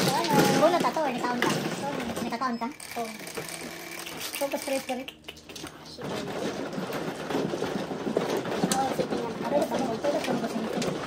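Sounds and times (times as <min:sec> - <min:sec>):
table motor humming: 0:02.4 - 0:05.1.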